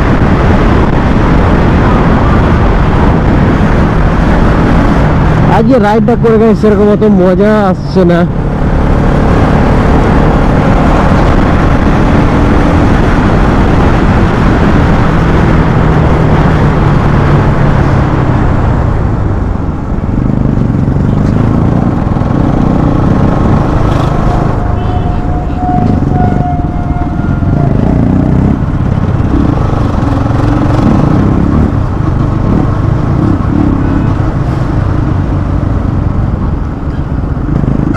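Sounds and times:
ride noise: 0.0s - 37.9s
motorcycle engine running: 8.3s - 37.9s
steady higher tone: 23.5s - 30.7s.

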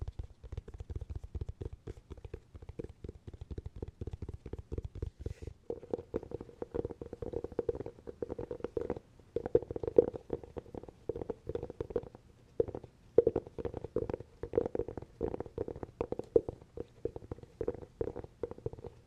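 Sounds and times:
fingers tapping hollow cork: 0.0s - 19.0s.

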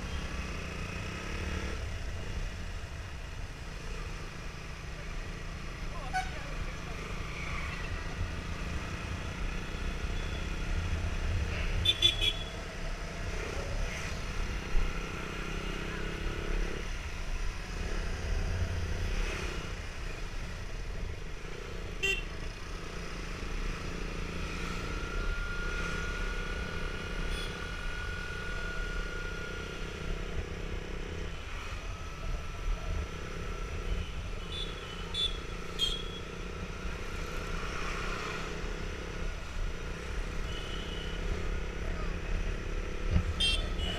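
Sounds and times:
street traffic: 0.0s - 43.9s.

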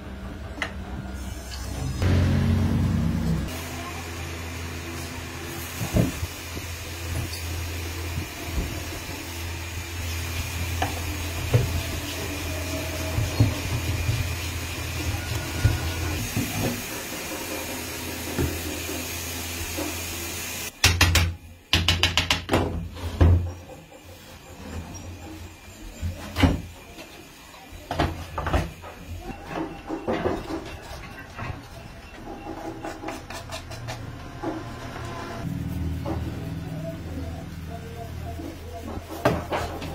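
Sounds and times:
low workshop hum: 0.0s - 39.9s.

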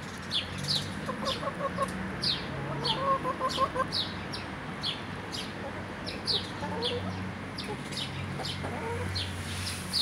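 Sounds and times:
chicks peeping: 0.7s - 10.0s
hen clucks: 1.0s - 4.0s, 5.6s - 9.2s.

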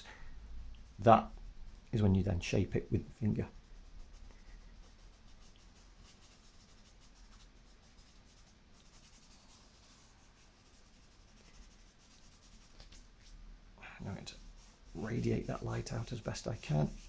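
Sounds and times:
fingers rubbing on paper: 3.2s - 13.1s, 14.3s - 17.0s.

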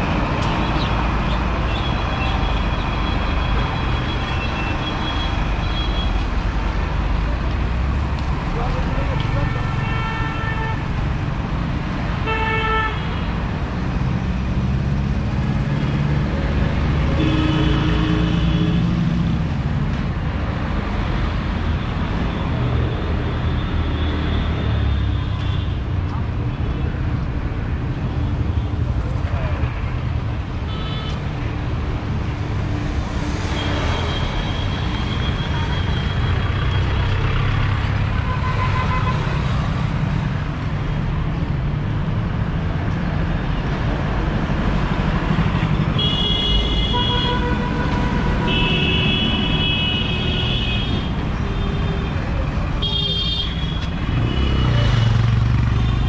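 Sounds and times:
vehicle engines rumbling: 0.0s - 56.0s
car and bus horns honking: 17.1s - 18.9s, 45.7s - 52.0s.

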